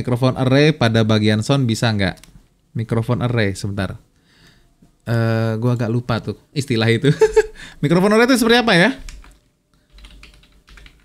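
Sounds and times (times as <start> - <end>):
computer keyboard typing: 2.0 - 2.4, 8.7 - 11.0.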